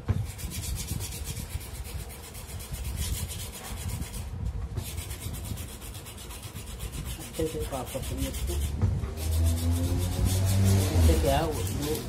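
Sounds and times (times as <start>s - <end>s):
hand rubbing metal ring: 0.3s - 12.0s.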